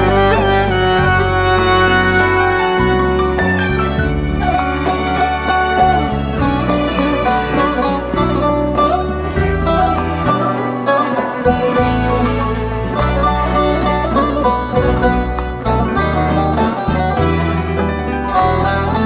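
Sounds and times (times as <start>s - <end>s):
plucked string melody: 0.0s - 19.0s
steady bass: 0.0s - 19.0s.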